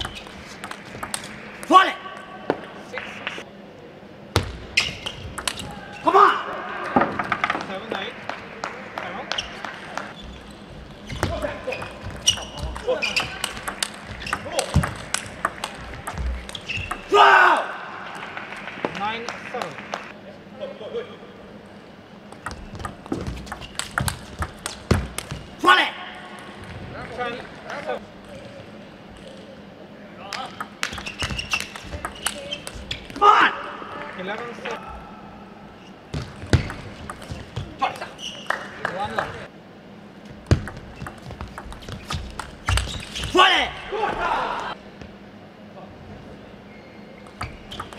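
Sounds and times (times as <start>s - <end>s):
table tennis ball bouncing: 0.0s - 2.7s, 4.4s - 5.7s, 11.1s - 17.2s, 22.3s - 25.6s, 30.4s - 33.2s, 36.1s - 38.5s, 40.4s - 43.2s, 47.2s - 47.9s
voices in a hall: 0.9s - 22.4s, 25.4s - 40.3s, 43.2s - 47.8s
sneaker squeaks on floor: 4.7s - 6.1s, 9.3s - 14.6s, 16.2s - 17.1s, 22.6s - 24.1s, 30.9s - 33.2s, 35.8s - 38.7s, 40.7s - 43.4s, 46.7s - 47.9s.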